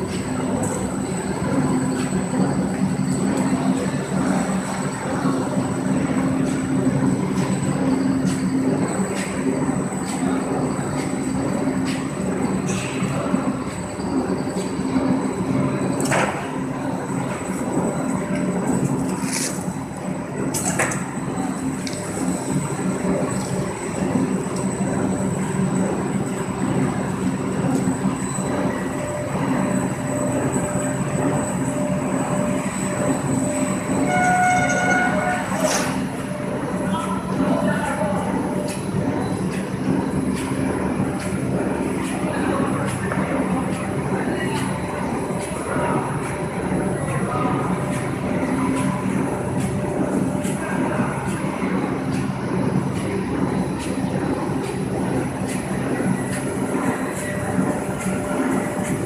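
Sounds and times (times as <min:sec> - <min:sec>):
machinery hum: 0:00.0 - 0:59.0
thin high whine: 0:27.7 - 0:39.4
brief pitched tone: 0:33.5 - 0:37.1.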